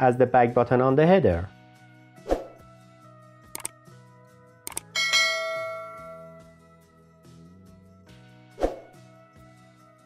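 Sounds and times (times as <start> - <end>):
quick clicks: 3.6 - 3.8, 4.7 - 4.9
notification bell chime: 5.0 - 6.4.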